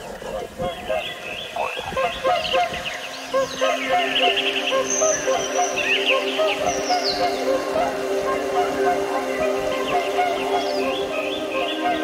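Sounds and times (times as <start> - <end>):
birds chirping and whistling: 0.0 - 12.0.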